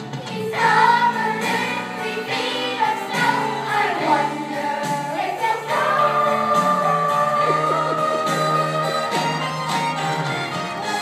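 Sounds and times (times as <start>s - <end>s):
group of voices singing: 0.0s - 9.7s
instrumental backing: 0.0s - 11.0s.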